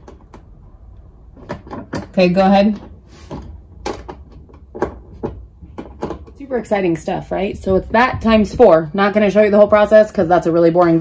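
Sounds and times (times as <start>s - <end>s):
hand tools clicking and knocking: 3.8s - 7.0s.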